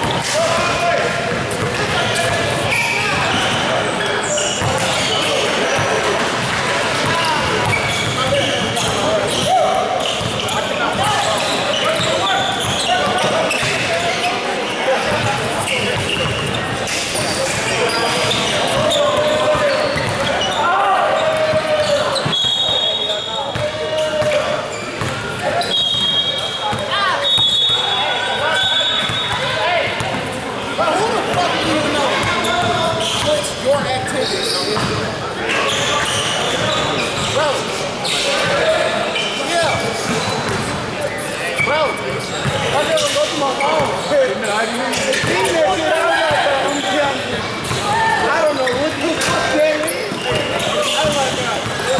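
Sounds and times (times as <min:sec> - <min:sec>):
people talking and calling out: 0:00.0 - 0:51.9.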